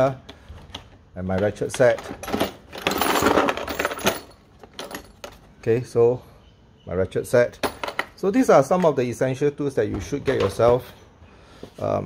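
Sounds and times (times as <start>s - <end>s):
metal sockets rattling in plastic case: 0.6s - 5.6s.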